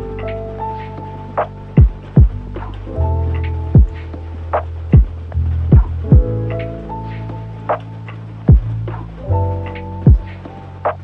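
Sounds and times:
lo-fi hip hop beat: 0.0s - 11.0s
sustained bass and chords: 0.0s - 11.0s
deep kick drum: 1.8s - 2.8s, 3.8s - 4.0s, 4.9s - 6.4s, 8.5s - 9.1s, 10.0s - 10.4s.

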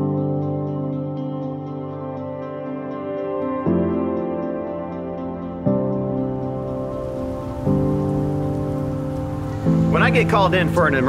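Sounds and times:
slow sustained music chords: 0.0s - 11.0s
heavy rain falling: 6.4s - 11.0s.

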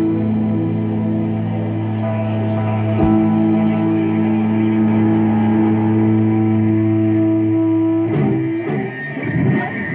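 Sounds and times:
electric guitar chord ringing: 0.0s - 9.9s.

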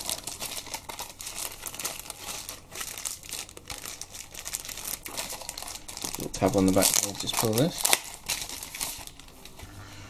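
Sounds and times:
plastic wrapping crinkling: 0.0s - 9.6s.

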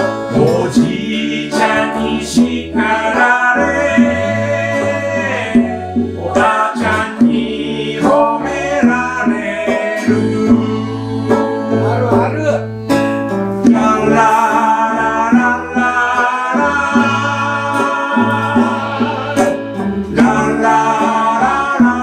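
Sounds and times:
person singing: 0.0s - 12.3s, 13.6s - 22.0s
acoustic band playing: 0.0s - 22.0s
acoustic bass guitar notes: 0.0s - 22.0s.

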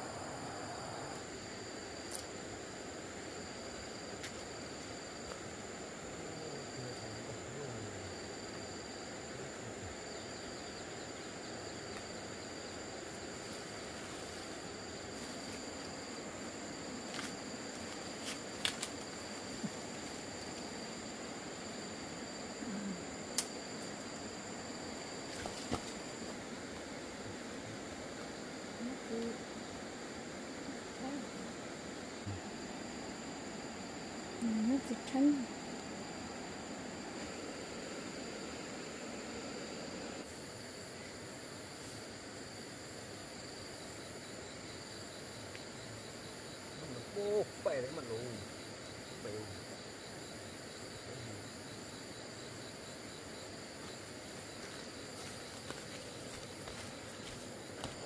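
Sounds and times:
insect trill: 0.0s - 58.0s.

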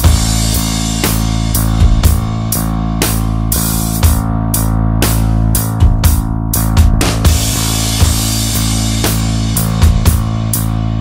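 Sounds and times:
instrumental pop band music: 0.0s - 11.0s.

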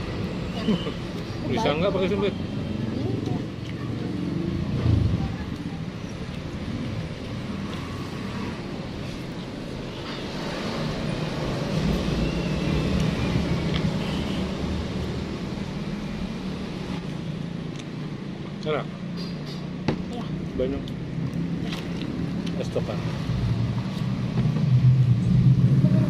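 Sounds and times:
road traffic rumble: 0.0s - 26.0s
vehicle passing: 1.4s - 5.6s.

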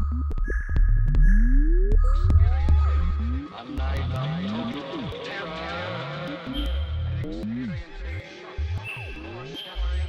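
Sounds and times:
electronic music with sliding synth bass: 0.0s - 10.0s.

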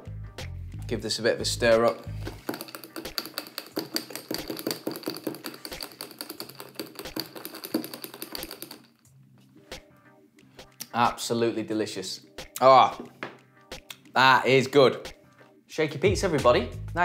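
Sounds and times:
spoon clinking against glass: 1.8s - 8.8s.

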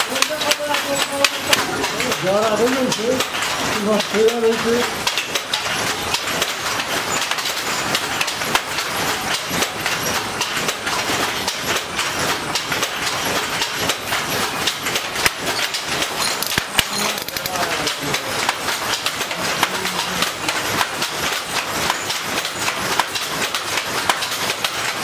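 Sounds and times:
wooden hand loom clattering: 0.0s - 25.0s.

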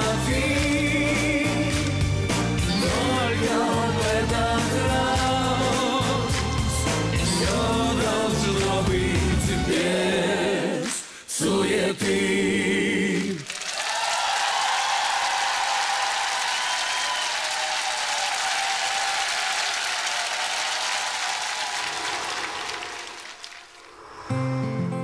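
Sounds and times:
studio audience applauding: 0.0s - 9.4s, 13.0s - 24.0s.

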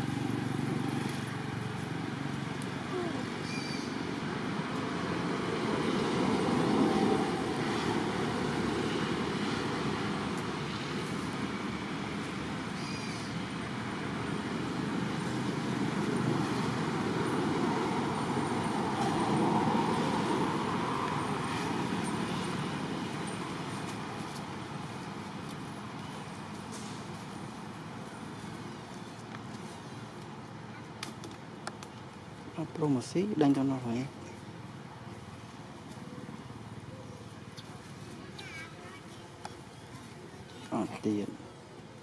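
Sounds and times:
road traffic rushing: 0.0s - 42.0s.

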